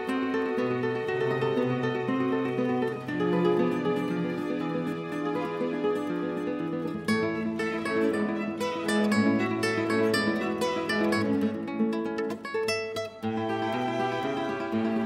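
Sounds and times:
plucked guitar music: 0:00.0 - 0:15.0.

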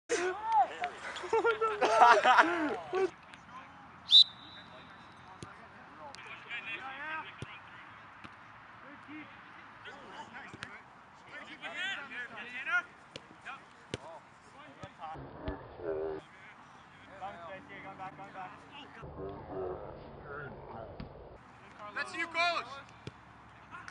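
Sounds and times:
referee's whistle blast: 0:04.1 - 0:05.2.

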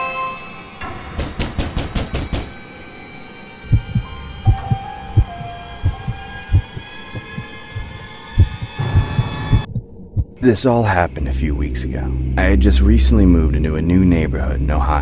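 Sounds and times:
droning pad: 0:02.3 - 0:15.0
heartbeat thumps: 0:03.7 - 0:10.4.

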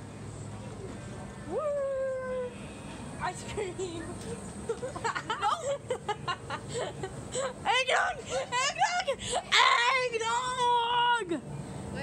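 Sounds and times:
low store hum: 0:00.0 - 0:12.0.

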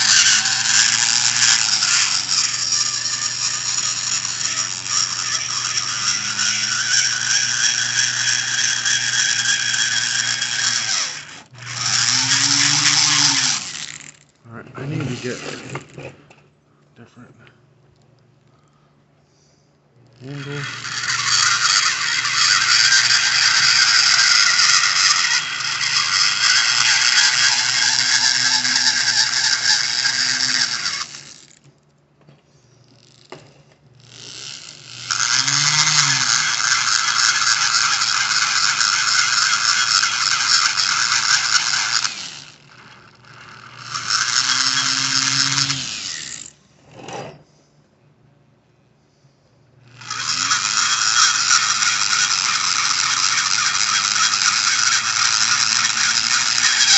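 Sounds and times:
die grinder grinding metal: 0:00.0 - 0:16.1, 0:20.0 - 0:31.6, 0:33.0 - 0:47.3, 0:49.8 - 0:56.9.

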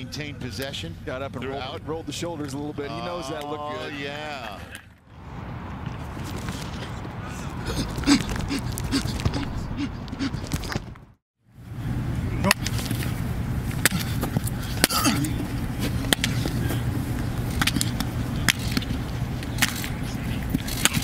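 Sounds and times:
steady low hum: 0:06.4 - 0:21.0
person laughing: 0:07.6 - 0:10.5.

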